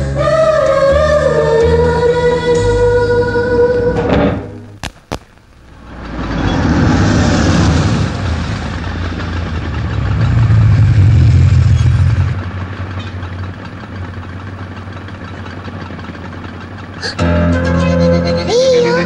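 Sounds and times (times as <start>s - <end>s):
vehicle engines idling and revving: 0.0s - 4.8s, 5.6s - 19.0s.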